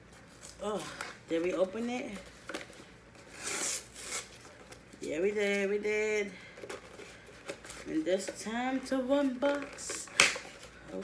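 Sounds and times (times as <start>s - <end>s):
tape tearing: 2.5s - 4.6s, 9.3s - 10.7s.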